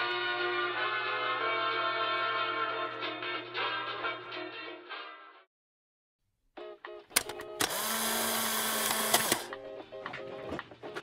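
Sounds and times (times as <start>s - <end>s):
background music: 0.0s - 5.5s, 6.6s - 11.0s
small electric motor running: 7.6s - 9.5s.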